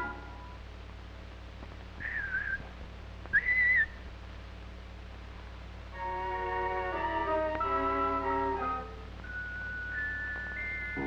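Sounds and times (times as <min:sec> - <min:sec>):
film soundtrack hum and hiss: 0:00.0 - 0:11.0
whistled notes: 0:02.0 - 0:02.7, 0:03.3 - 0:04.0.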